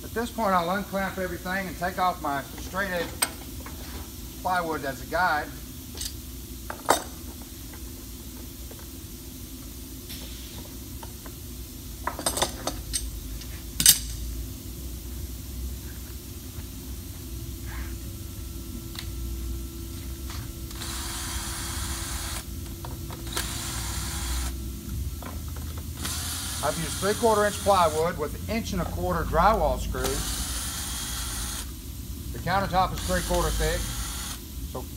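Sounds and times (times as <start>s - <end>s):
low steady hum: 0.0s - 34.9s
cordless drill whirring: 20.7s - 22.4s, 23.3s - 24.5s, 26.0s - 28.0s, 30.2s - 31.7s, 33.0s - 34.4s.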